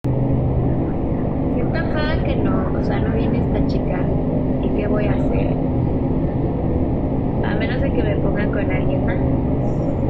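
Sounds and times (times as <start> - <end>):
low hum: 0.0 - 10.0
steady low rumble: 0.0 - 10.0
woman speaking: 1.5 - 5.6, 7.4 - 9.3.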